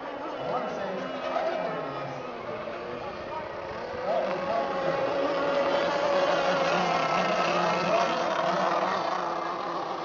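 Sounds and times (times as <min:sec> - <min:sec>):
model boat motors whining: 0:00.0 - 0:10.0.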